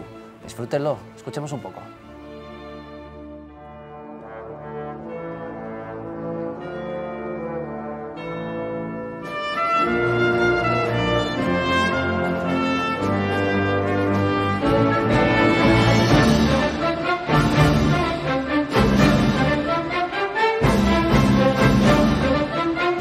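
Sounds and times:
orchestral film score music: 0.0 - 23.0
brass playing: 1.4 - 23.0.

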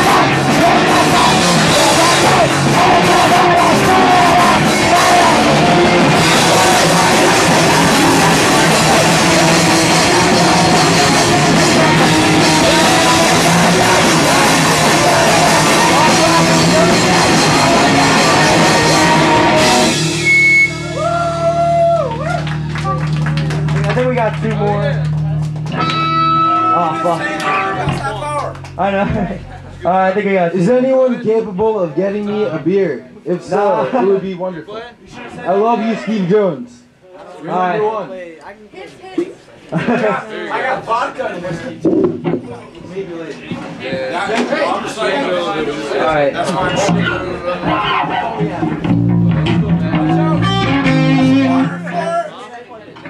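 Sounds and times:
electric guitars ringing: 0.0 - 30.8, 48.6 - 52.2.

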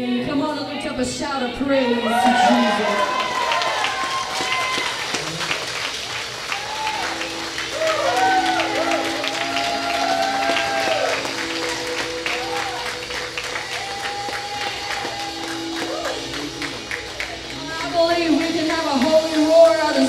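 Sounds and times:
people shouting praise: 1.8 - 5.6, 6.5 - 18.0
congregation clapping: 2.4 - 19.9
sustained keyboard chord: 7.1 - 20.0.

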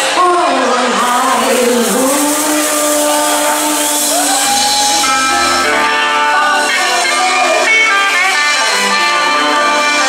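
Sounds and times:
live blues band playing: 0.0 - 10.0
woman singing long note: 0.2 - 7.7.

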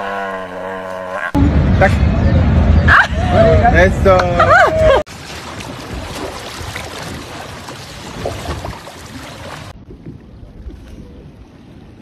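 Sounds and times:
wind buffeting microphone: 1.4 - 12.0
water rumbling around boat: 4.5 - 12.0.

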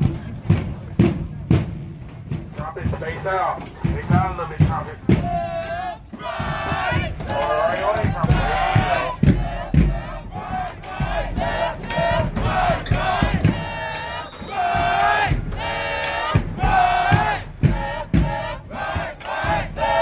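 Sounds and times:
low thumps: 0.0 - 20.0
group chanting and shouting: 2.6 - 20.0.

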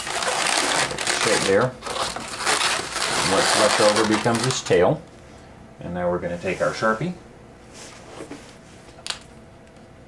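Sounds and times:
faint handling of balloons: 0.0 - 4.8.

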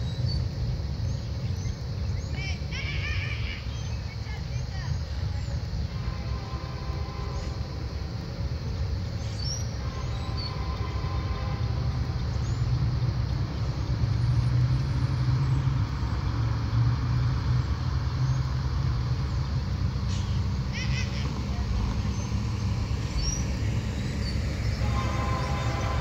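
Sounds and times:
diesel locomotives rumbling: 0.0 - 26.0.

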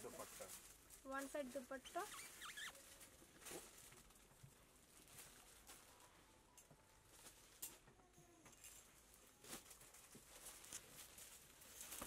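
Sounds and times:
cloth rustling: 0.0 - 6.2, 8.6 - 12.0
high squeaky chirp: 2.1 - 2.8.

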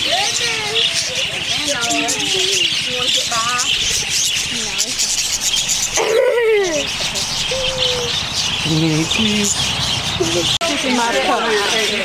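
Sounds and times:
budgerigars chattering: 0.0 - 12.0.

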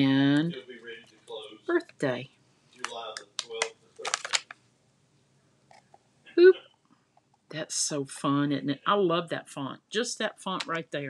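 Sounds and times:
light plastic clicks and crackles: 2.7 - 4.6.

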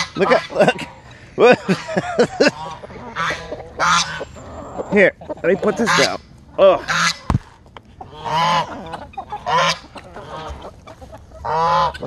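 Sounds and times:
ducks quacking: 0.0 - 12.0
geese honking: 0.0 - 12.0.

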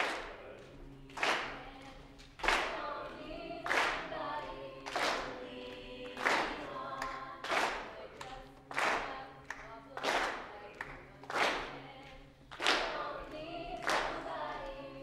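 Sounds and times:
group singing chords in harmony: 0.0 - 15.0.

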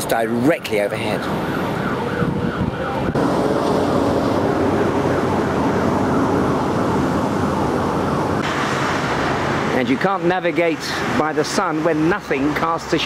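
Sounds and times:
street traffic noise: 0.0 - 13.0
siren wailing: 0.6 - 8.4.

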